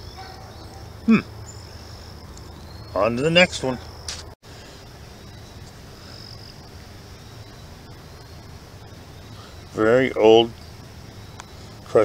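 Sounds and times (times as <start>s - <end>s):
high insect buzz: 0.0s - 12.0s
low steady rumble: 3.8s - 12.0s.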